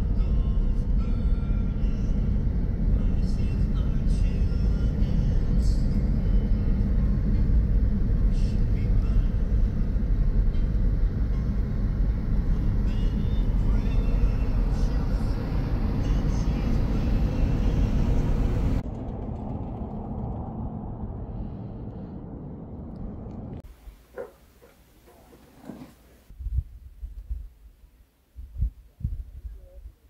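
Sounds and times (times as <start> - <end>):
car road and engine noise: 0.0 - 26.4
quiet outdoor ambience: 0.0 - 30.0.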